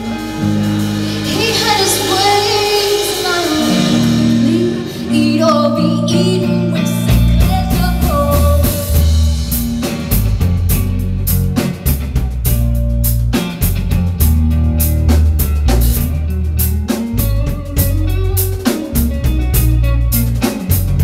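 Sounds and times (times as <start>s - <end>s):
bass guitar: 0.0s - 21.0s
drum kit beat: 0.0s - 21.0s
electric guitar: 0.0s - 21.0s
female vocal singing: 1.0s - 9.0s.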